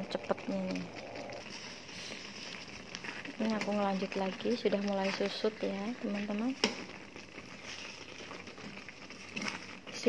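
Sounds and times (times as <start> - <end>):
jam bubbling in a frying pan: 0.0 - 10.0
spatula stirring: 0.0 - 10.0.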